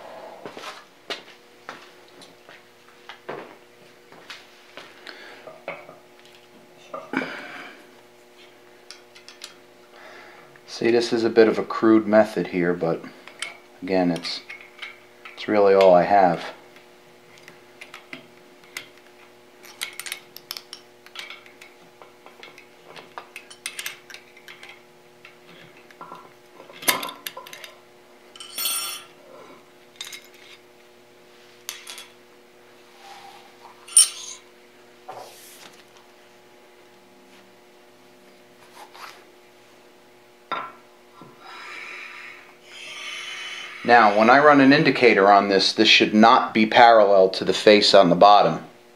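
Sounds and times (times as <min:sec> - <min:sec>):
metal clinks and clicks: 0:33.9 - 0:34.4.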